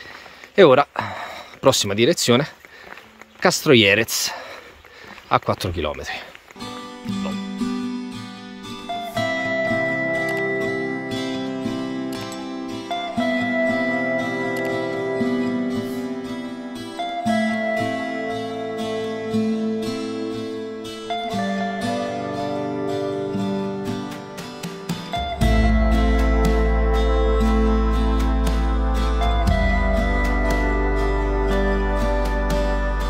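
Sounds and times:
plucked acoustic guitar: 6.6 - 33.0.

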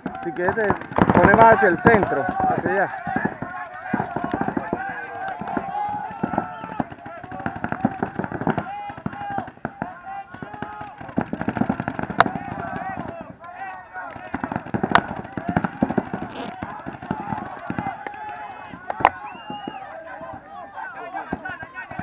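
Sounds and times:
loud sharp cracks: 0.0 - 19.7
paintball markers firing: 0.0 - 20.2, 21.1 - 22.0
people shouting: 0.0 - 22.0.

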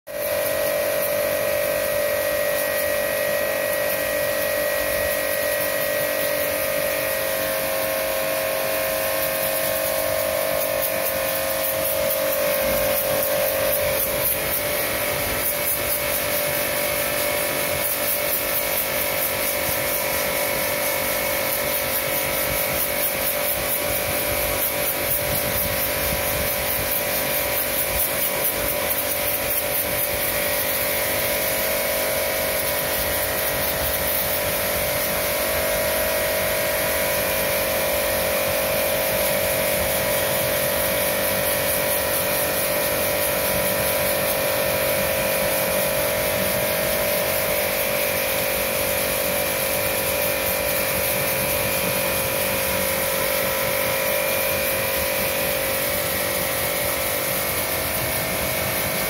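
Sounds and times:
pressure washer motor whining: 0.1 - 59.0
water jet hissing: 0.1 - 59.0.

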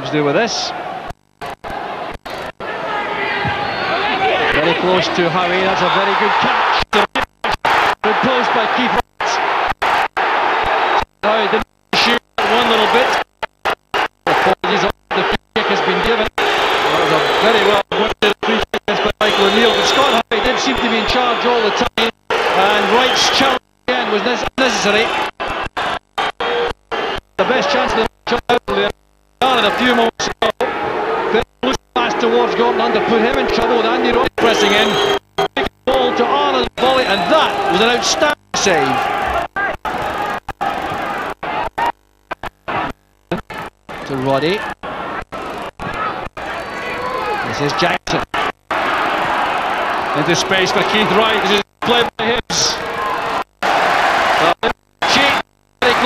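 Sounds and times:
stadium crowd noise: 0.0 - 56.0
voices on broadcast: 11.0 - 41.5, 50.1 - 52.9, 54.4 - 56.0.

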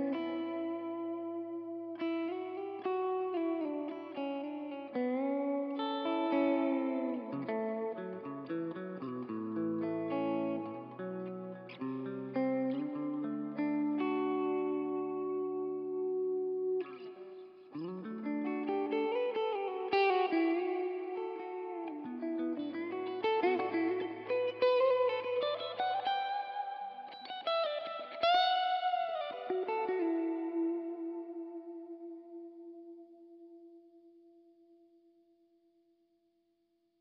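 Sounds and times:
electric guitar with reverb: 0.0 - 35.5.

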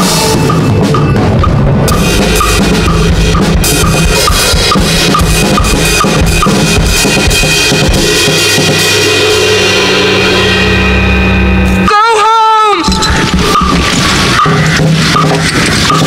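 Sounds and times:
drum kit playing: 0.0 - 16.0
loud backing track: 0.0 - 16.0.

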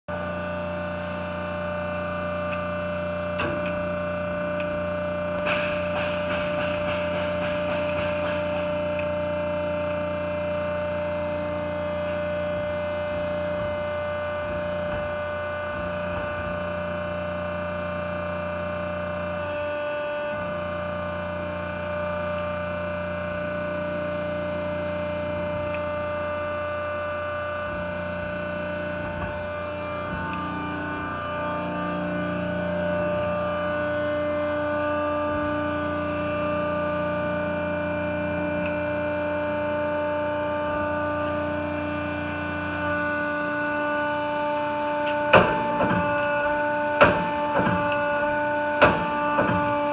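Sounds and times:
press brake motor hum: 0.1 - 49.9.

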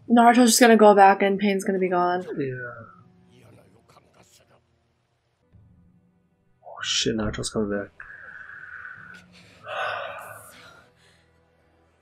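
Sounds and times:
person sighing: 9.6 - 10.6.

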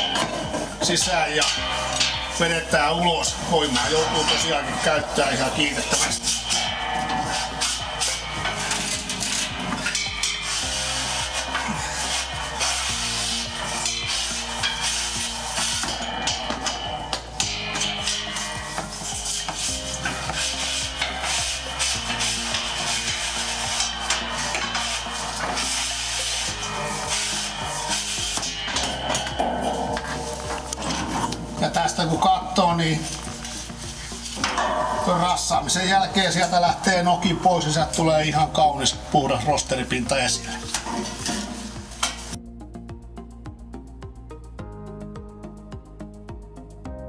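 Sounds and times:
wire brush scraping metal tubes: 0.0 - 42.4.

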